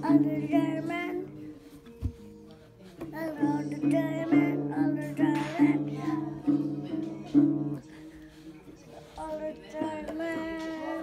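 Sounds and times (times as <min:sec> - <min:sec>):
acoustic guitar strums: 0:03.1 - 0:07.8.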